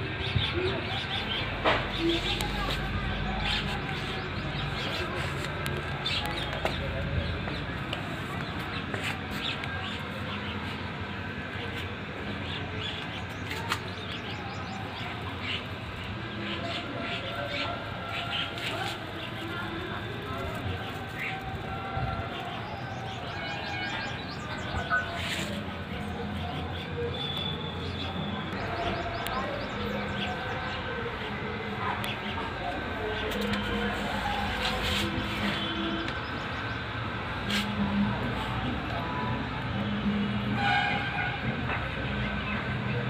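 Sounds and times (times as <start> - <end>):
brief horn: 40.4 - 41.7.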